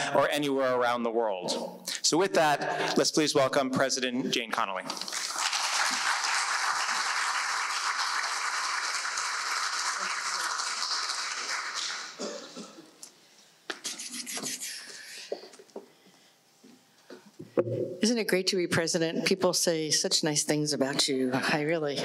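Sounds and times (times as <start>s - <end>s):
audience applauding: 5.0s - 12.2s.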